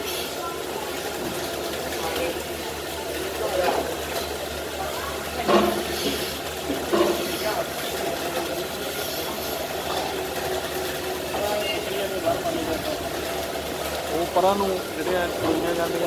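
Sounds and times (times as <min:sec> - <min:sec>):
milking machinery humming: 0:00.0 - 0:16.0
water spraying from a hose: 0:00.0 - 0:16.0.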